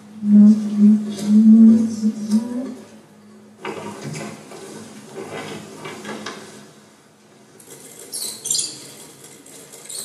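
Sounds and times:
faint steady hum: 0.0s - 7.7s.

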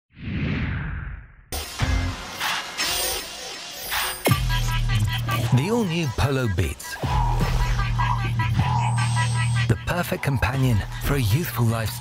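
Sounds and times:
music: 1.5s - 12.0s.

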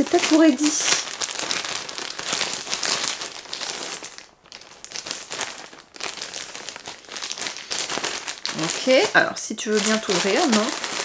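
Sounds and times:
plastic bag crinkling: 0.0s - 11.0s.

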